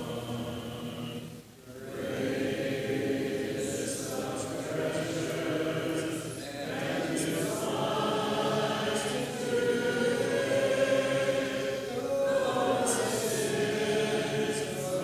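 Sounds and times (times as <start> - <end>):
congregation singing a hymn: 0.0 - 15.0.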